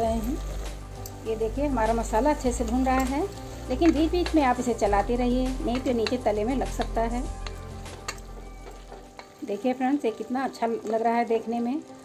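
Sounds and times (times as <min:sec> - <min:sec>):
paste sizzling in oil: 0:00.0 - 0:12.0
wooden spatula knocking on pan: 0:05.6 - 0:09.3.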